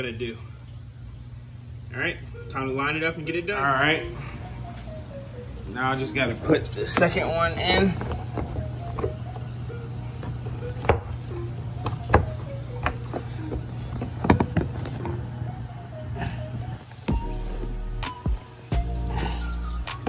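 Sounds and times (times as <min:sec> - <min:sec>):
background music with deep bass: 0:03.9 - 0:20.0
plastic fitting knocking: 0:11.8 - 0:15.0.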